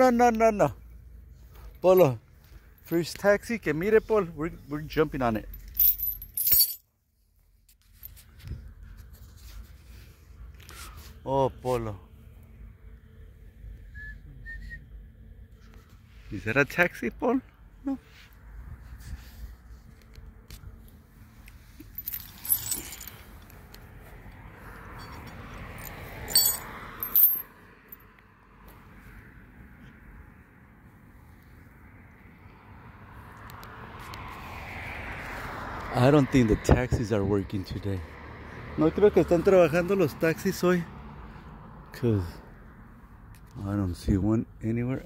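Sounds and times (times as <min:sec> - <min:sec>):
metal chain leash jingling: 0:05.6 - 0:06.8, 0:21.8 - 0:23.3, 0:25.0 - 0:27.5.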